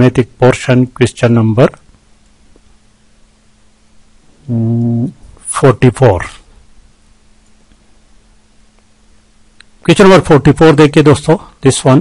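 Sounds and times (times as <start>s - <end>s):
man humming hesitantly: 4.4s - 5.2s.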